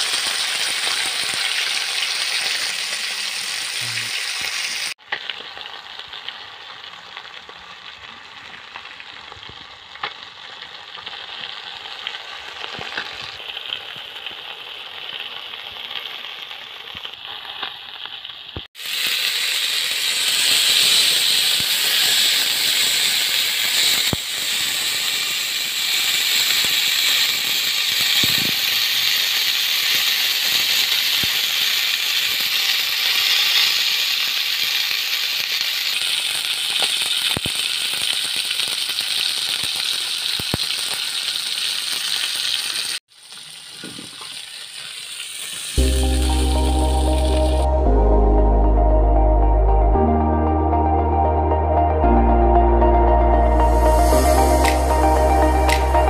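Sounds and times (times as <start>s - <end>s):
fish sizzling in oil: 0.0s - 47.7s.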